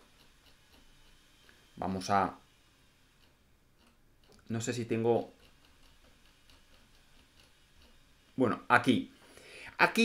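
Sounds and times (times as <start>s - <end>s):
faint ticking: 0.0s - 10.0s.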